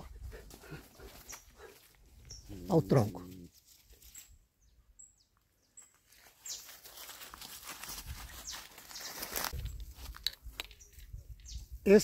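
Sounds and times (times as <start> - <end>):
footsteps through grass: 0.1 - 4.4, 5.8 - 11.0
leafy tree branches rustling: 5.9 - 11.1.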